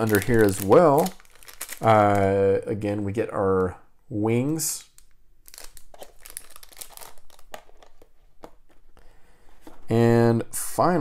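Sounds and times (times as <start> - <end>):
plastic bag crinkling: 0.0 - 2.4, 4.8 - 8.7.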